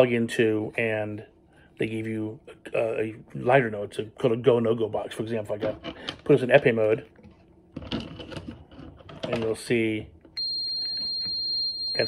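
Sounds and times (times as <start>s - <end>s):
high-pitched tester beep: 10.4s - 12.0s.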